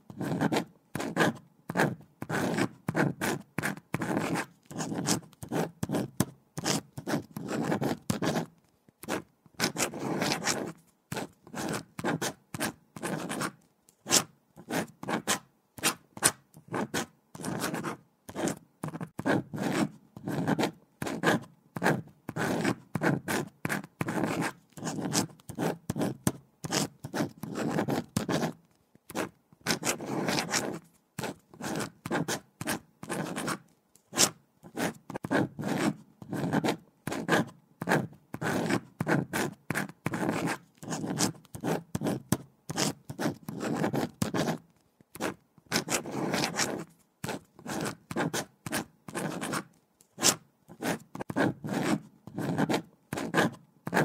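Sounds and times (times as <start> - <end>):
pen scratching on paper: 0.1 - 54.0.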